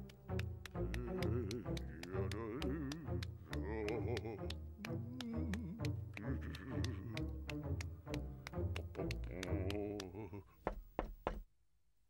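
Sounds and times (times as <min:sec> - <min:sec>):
knocks on a door: 0:10.7 - 0:11.4.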